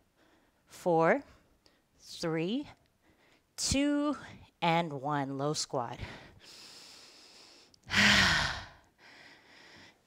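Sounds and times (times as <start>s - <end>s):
woman sighing: 7.9s - 8.8s.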